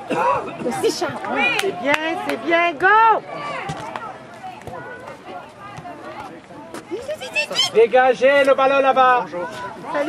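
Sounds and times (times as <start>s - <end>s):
outdoor background noise: 0.0s - 10.0s
players and spectators calling out: 0.0s - 10.0s.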